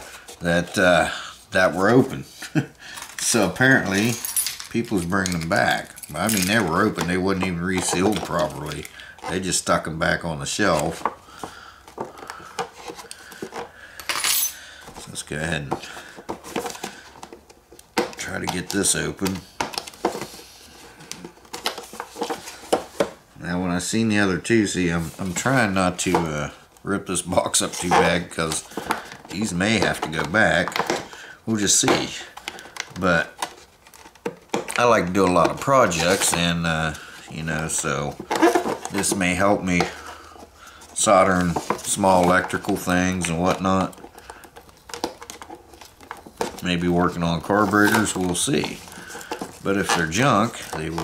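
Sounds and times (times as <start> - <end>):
cardboard box rustling: 33.1 - 51.0.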